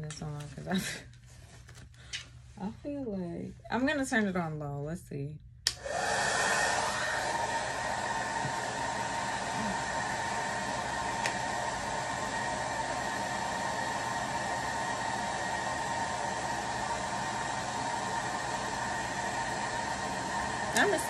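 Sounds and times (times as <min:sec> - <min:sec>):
blow dryer switch click: 0:05.6 - 0:05.9, 0:11.2 - 0:11.4
blow dryer running: 0:05.7 - 0:21.0.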